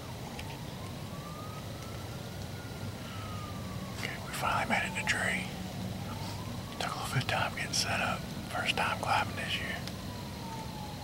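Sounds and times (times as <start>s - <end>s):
steady low rumble: 0.8s - 10.9s.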